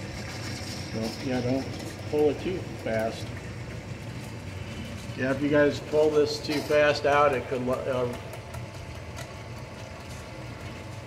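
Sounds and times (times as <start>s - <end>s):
drain cleaning machine humming: 0.0s - 11.0s.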